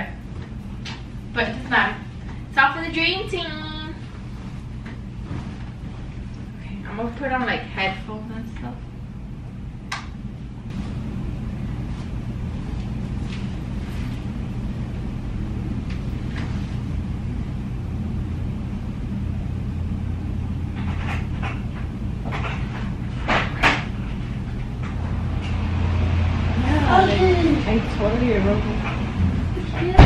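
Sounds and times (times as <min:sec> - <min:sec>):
low room hum: 0:00.0 - 0:30.0.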